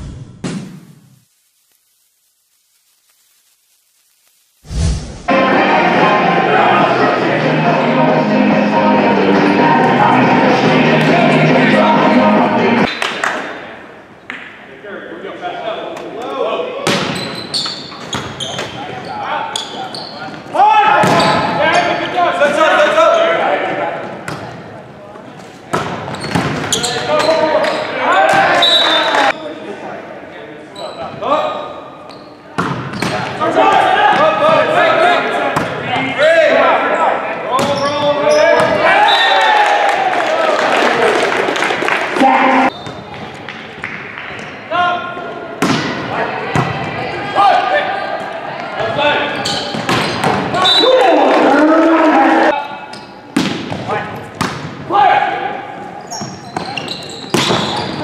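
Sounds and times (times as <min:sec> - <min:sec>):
people shouting and cheering: 0:05.3 - 0:12.9, 0:26.8 - 0:29.4, 0:33.4 - 0:37.4, 0:38.0 - 0:42.7, 0:44.6 - 0:49.4, 0:50.4 - 0:52.6
players shouting: 0:05.3 - 0:12.9, 0:50.4 - 0:52.6
volleyball hits: 0:16.8 - 0:17.4, 0:21.0 - 0:21.6, 0:32.5 - 0:34.6, 0:45.6 - 0:46.9, 0:49.5 - 0:50.6, 0:53.3 - 0:54.9, 0:56.5 - 0:57.9.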